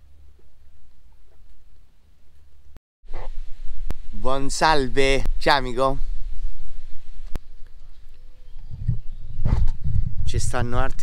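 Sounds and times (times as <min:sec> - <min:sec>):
wind buffeting microphone: 0:03.1 - 0:11.0.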